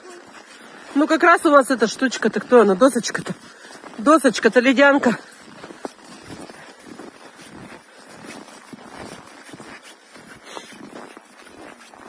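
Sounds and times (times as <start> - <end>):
footsteps on packed snow: 0.0 - 12.0.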